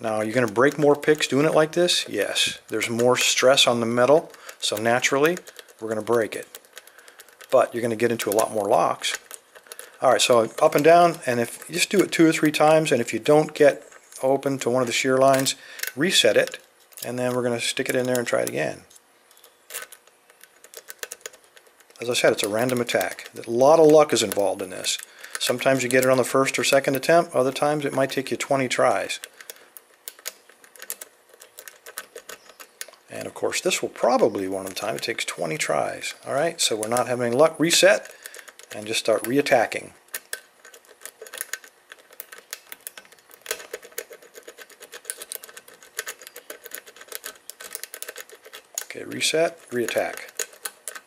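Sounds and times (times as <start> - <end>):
lock pick raking metal clicks: 2.7 - 18.7, 19.3 - 51.0.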